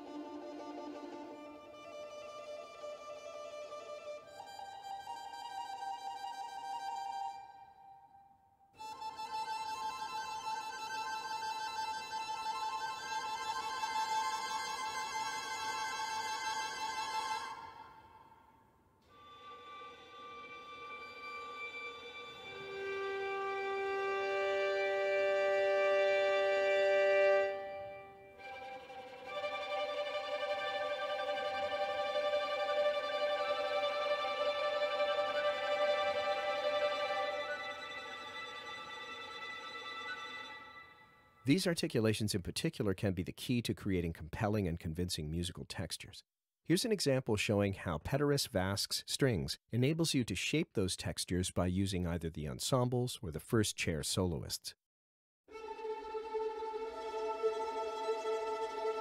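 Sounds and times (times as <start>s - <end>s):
violin playing trills: 0.0s - 8.0s, 8.8s - 18.4s, 19.1s - 41.5s, 55.5s - 59.0s.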